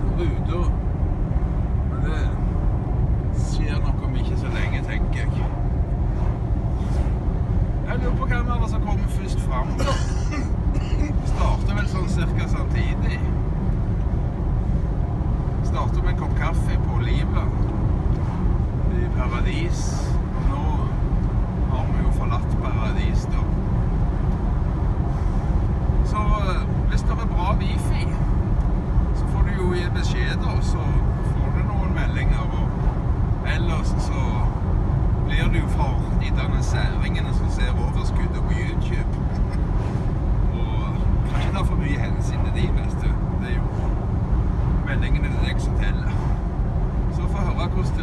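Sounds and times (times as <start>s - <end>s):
vehicle road noise: 0.0s - 48.0s.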